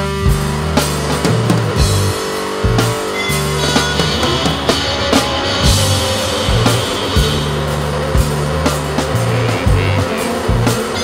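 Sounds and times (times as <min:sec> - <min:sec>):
instrumental rock music: 0:00.0 - 0:11.0
drum hits: 0:00.3 - 0:11.0.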